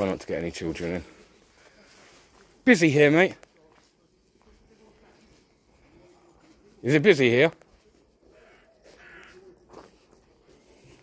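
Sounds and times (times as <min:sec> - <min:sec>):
faint bird calls: 0:08.0 - 0:11.0.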